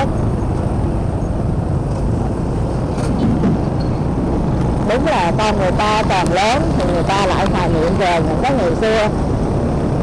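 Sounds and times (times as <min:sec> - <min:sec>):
motorbike engine rumble: 0:00.0 - 0:10.0
road noise: 0:00.0 - 0:10.0.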